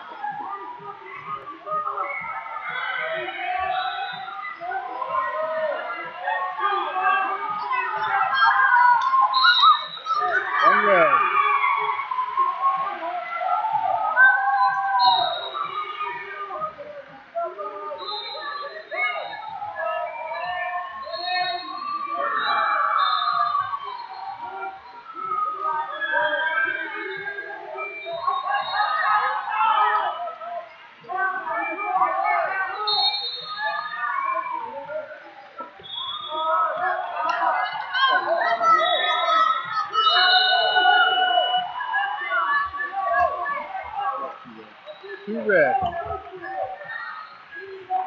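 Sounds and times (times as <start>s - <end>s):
crowd shouting and chattering: 0.0s - 48.0s.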